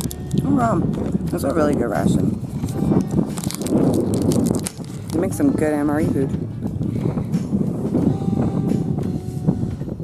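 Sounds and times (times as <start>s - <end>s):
cracker being chewed: 0.0s - 1.8s, 2.6s - 5.2s
wind buffeting microphone: 0.0s - 10.0s.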